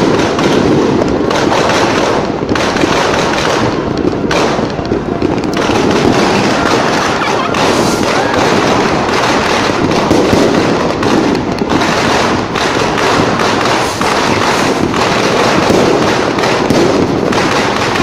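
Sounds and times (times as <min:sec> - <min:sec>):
firecrackers crackling and popping: 0:00.0 - 0:18.0.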